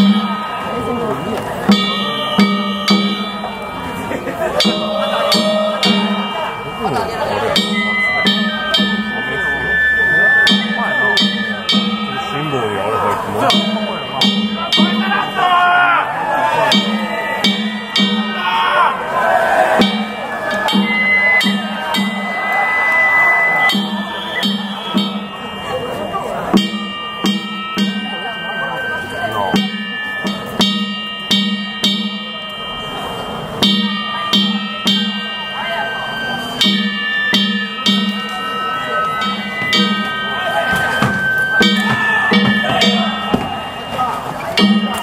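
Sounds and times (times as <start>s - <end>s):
crowd voices: 0.0s - 45.0s
drum beating steadily: 0.0s - 45.0s
high flute notes: 19.7s - 30.2s.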